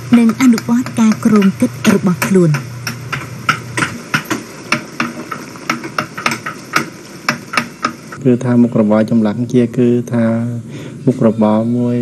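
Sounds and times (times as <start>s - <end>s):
wooden mallet striking chisel: 0.1s - 8.2s.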